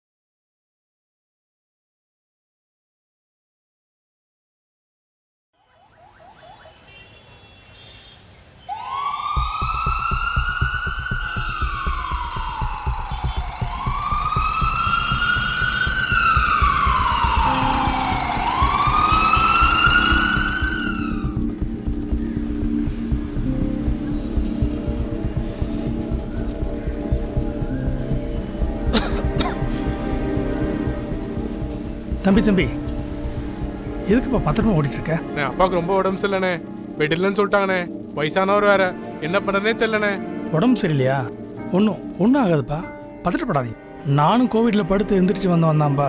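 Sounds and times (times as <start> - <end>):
ambulance siren wailing: 5.6 - 7.2, 8.7 - 32.9
film score with pulsing beat: 9.3 - 45.6.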